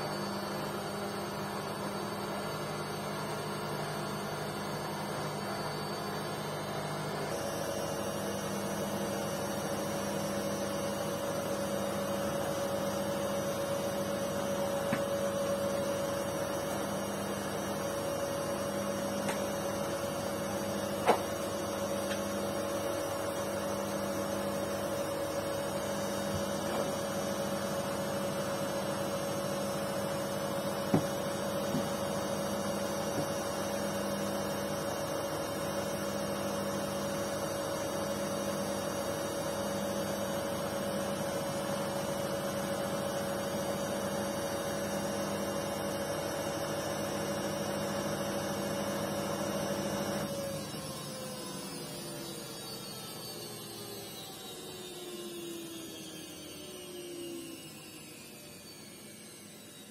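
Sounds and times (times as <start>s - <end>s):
washing machine spinning: 0.0s - 59.9s.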